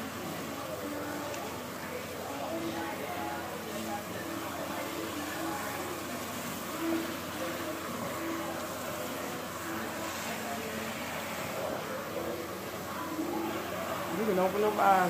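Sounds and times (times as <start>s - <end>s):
faint voices: 0.0s - 15.0s
water spraying into basin: 0.0s - 15.0s.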